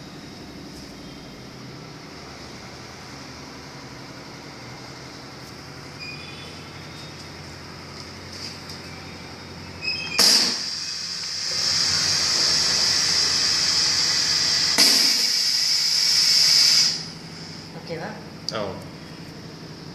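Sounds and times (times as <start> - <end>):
machine humming: 0.0 - 19.9
compressed air hissing: 9.8 - 17.8.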